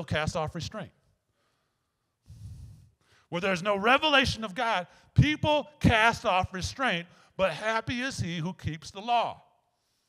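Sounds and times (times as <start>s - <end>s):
man breathing into microphone: 1.3s - 3.3s.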